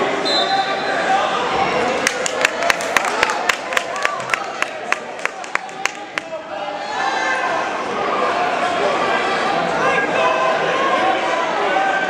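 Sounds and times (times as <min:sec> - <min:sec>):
murmur of crowd: 0:00.0 - 0:12.0.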